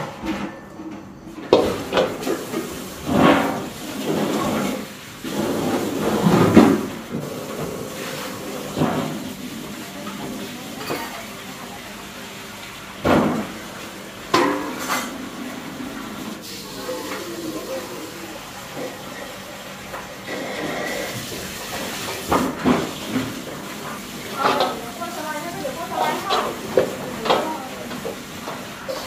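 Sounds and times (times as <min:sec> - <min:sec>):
metal bowls and pans clanking: 0:00.0 - 0:11.3, 0:14.3 - 0:16.1, 0:20.3 - 0:25.2, 0:25.9 - 0:29.0
water running from a tap: 0:01.5 - 0:29.0.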